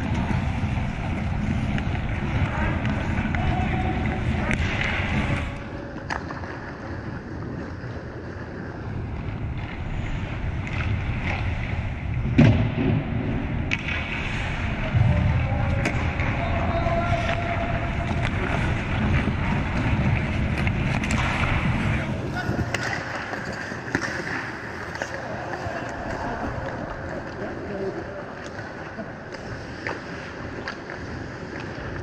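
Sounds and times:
hockey sticks and puck clacking: 0:00.0 - 0:07.0, 0:13.6 - 0:32.0
skate blades scraping ice: 0:00.0 - 0:11.9, 0:13.7 - 0:15.0, 0:16.0 - 0:32.0
low rink rumble: 0:00.0 - 0:32.0.

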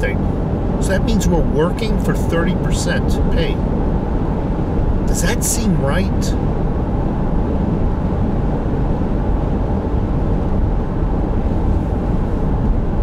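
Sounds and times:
car cabin road noise: 0:00.0 - 0:13.0.

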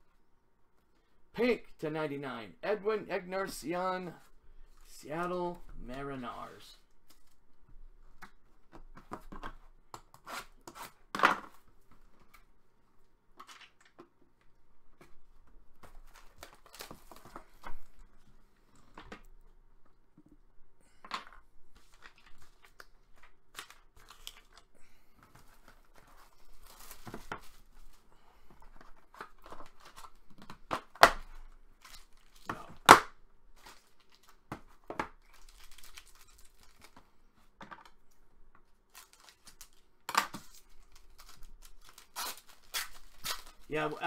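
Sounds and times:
packaging tearing and crinkling: 0:23.5 - 0:24.7, 0:35.1 - 0:37.0, 0:38.9 - 0:43.7
foil pack ripping: 0:40.5 - 0:43.7.

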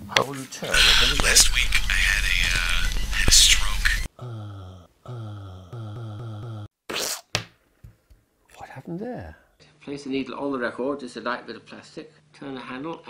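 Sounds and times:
scratchy voice from paper record: 0:00.3 - 0:04.1
stuttering voice snippet: 0:00.7 - 0:07.1.

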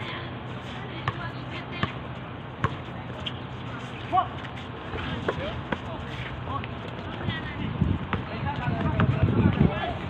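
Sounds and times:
basketball bouncing on hard court: 0:01.0 - 0:02.0.

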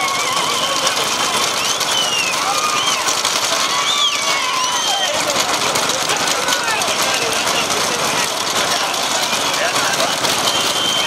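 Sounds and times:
spectators shouting: 0:00.0 - 0:11.0
steady rush of noise: 0:00.0 - 0:11.0
vehicle engine running: 0:00.0 - 0:11.0.

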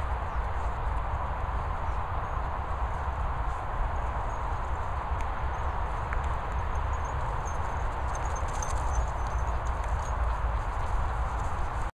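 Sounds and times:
wind rumbling on microphone: 0:00.0 - 0:11.9.

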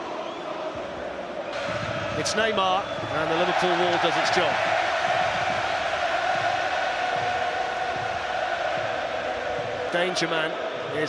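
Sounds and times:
stadium crowd voices: 0:00.0 - 0:11.0.

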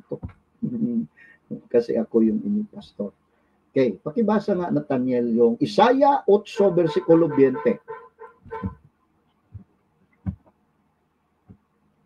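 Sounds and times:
faint man's voice: 0:06.5 - 0:07.8
soft low thump: 0:08.4 - 0:08.8, 0:09.5 - 0:10.5.

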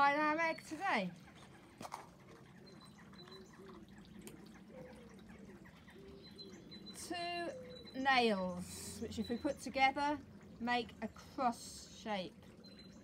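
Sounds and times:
faint low bird calls: 0:00.5 - 0:09.7.

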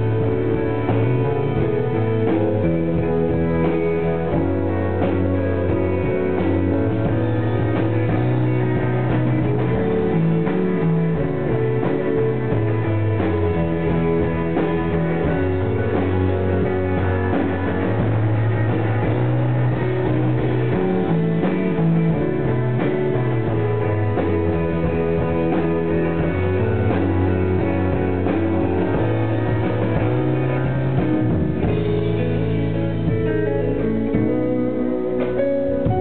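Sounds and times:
bass line: 0:00.0 - 0:36.0
electric guitars: 0:00.0 - 0:36.0
steady drumming: 0:00.0 - 0:36.0.

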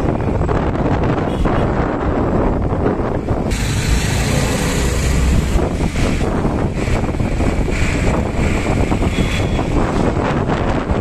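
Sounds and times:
road and engine noise: 0:00.0 - 0:11.0
wind buffeting microphone: 0:00.0 - 0:11.0
hiss: 0:03.5 - 0:05.3.

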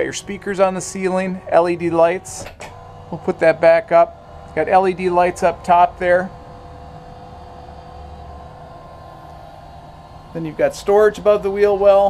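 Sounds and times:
electric motor hum: 0:00.0 - 0:12.0.

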